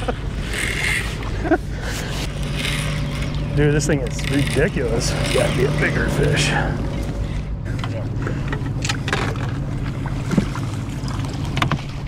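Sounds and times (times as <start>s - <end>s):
boat motor running: 0.0s - 12.0s.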